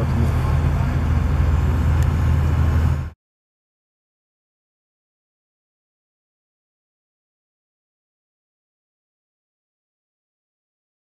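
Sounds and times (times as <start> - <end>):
low engine-like hum: 0.0 - 3.2.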